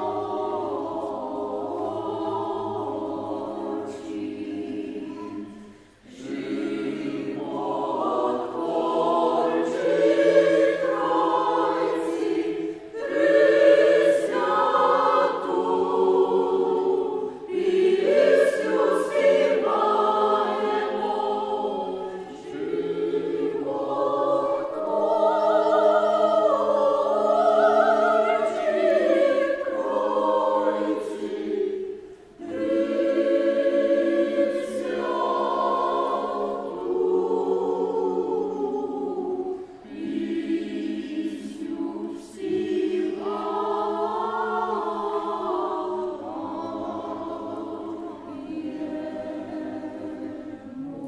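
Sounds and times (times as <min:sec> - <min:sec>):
mixed choir singing in harmony: 0:00.0 - 0:51.0
singers breathing: 0:05.5 - 0:06.1, 0:32.0 - 0:32.4.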